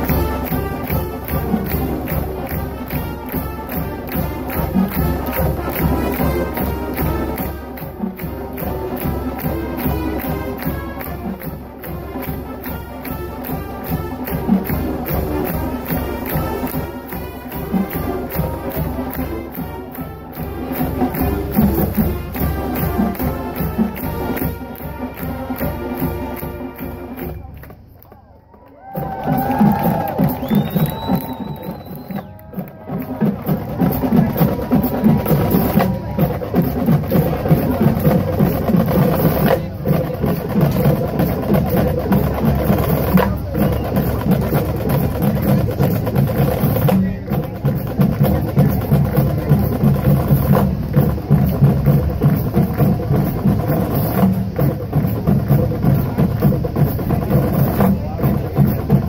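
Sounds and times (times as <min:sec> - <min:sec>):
marching drumline: 0:00.0 - 0:27.9, 0:28.8 - 0:59.0
crowd cheering and whooping: 0:28.4 - 0:32.9.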